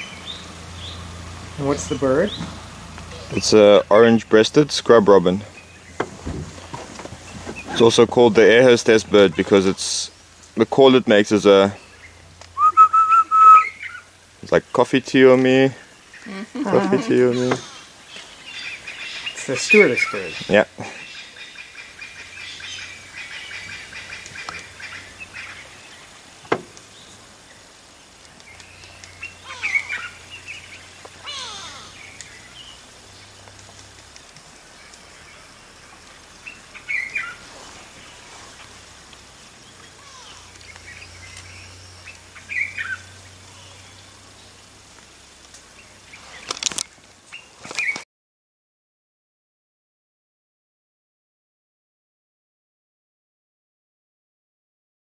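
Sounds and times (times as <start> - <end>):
birds chirping: 0.0 - 48.0.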